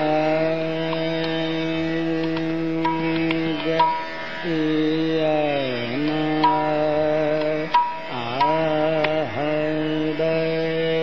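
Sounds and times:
harmonium: 0.0 - 11.0
man singing classical vocal: 0.0 - 11.0
tabla stroke: 0.8 - 4.5, 6.0 - 9.2.

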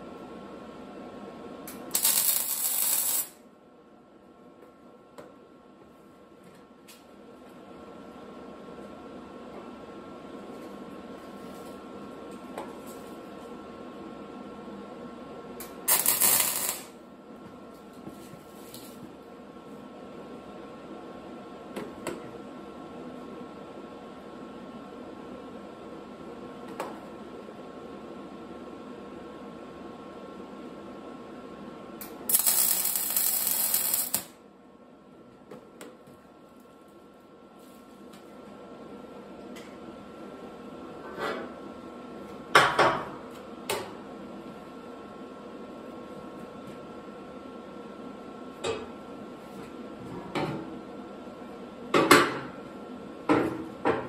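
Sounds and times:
steady hum: 0.0 - 50.0
welding arc bursts: 1.7 - 3.4, 15.6 - 16.9, 32.0 - 34.4.

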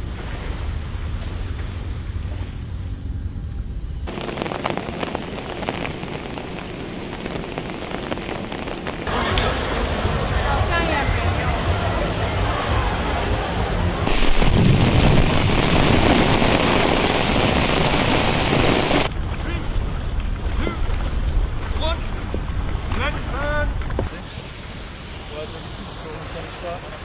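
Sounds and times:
loud steady rushing noise: 4.1 - 19.1
people's voices: 9.1 - 14.2.

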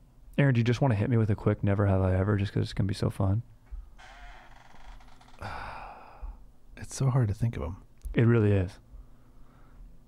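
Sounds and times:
person sighing: 5.3 - 6.4.

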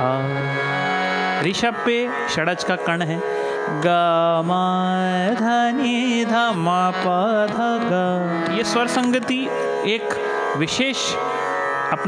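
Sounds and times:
man singing a long note: 0.0 - 0.7, 1.4 - 11.2.

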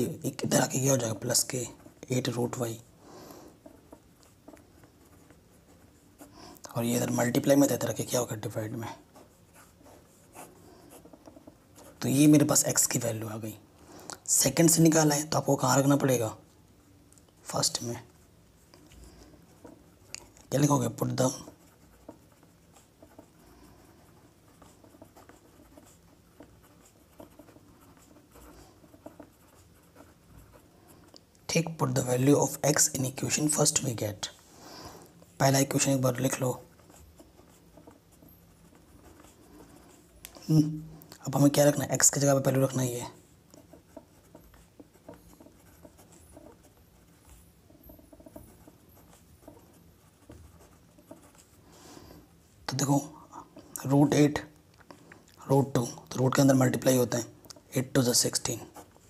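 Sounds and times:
pen scratching on paper: 0.0 - 13.5, 17.4 - 34.2, 34.8 - 54.4, 55.6 - 59.0.

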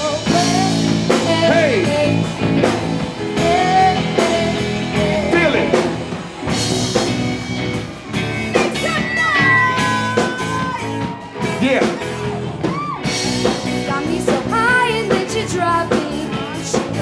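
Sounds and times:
electric guitar lead notes: 0.0 - 17.0
rock band playing: 0.0 - 17.0.

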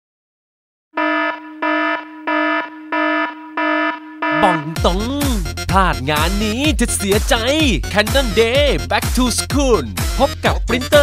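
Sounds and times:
buzzy electronic alarm beeps: 1.0 - 4.9.

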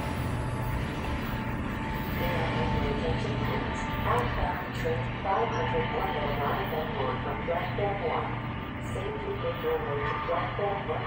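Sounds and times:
diesel train rumble: 0.0 - 11.0
loudspeaker announcement: 2.2 - 11.0.

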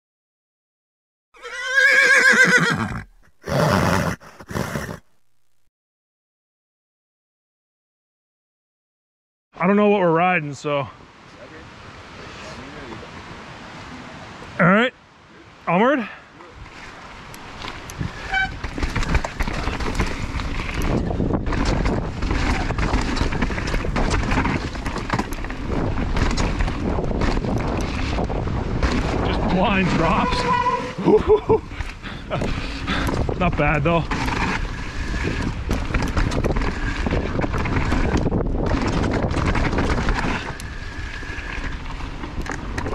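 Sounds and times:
horse whinnying: 1.4 - 5.2, 30.0 - 31.2
wind rushing over microphone: 16.6 - 42.9
tyres rolling on dirt: 17.5 - 42.9
bike rattling and knocking: 18.3 - 29.3, 31.8 - 42.9.

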